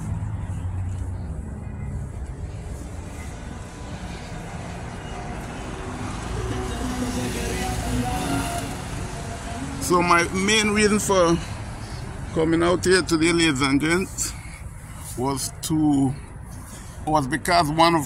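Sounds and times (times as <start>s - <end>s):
cars passing: 0.0s - 18.0s
city traffic rumble: 0.0s - 18.0s.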